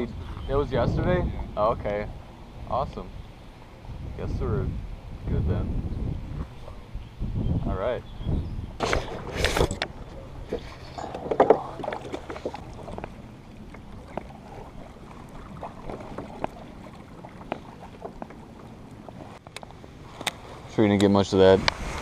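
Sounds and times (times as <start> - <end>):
water moving around kayak: 8.8 - 22.0
gear knocking on boat: 9.0 - 19.4.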